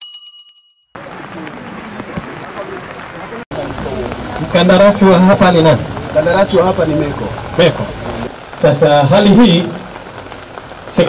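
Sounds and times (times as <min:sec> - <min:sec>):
crowd on the move: 0:01.0 - 0:10.3.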